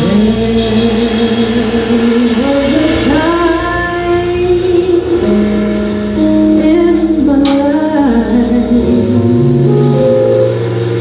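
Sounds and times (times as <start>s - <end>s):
woman singing: 0.0s - 10.0s
live band playing: 0.0s - 11.0s.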